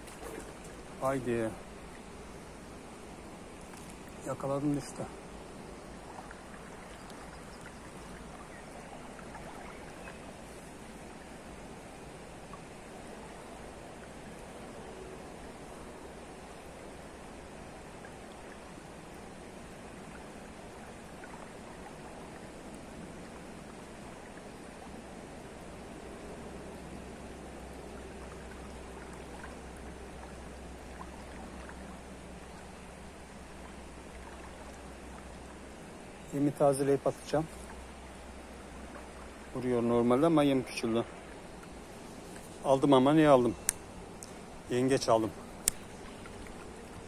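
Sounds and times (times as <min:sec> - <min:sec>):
river water flowing over stones: 0:00.0 - 0:47.0.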